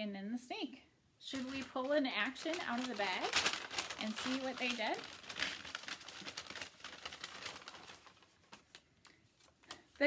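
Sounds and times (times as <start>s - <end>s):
paper bag crinkling and rustling: 1.2s - 10.0s.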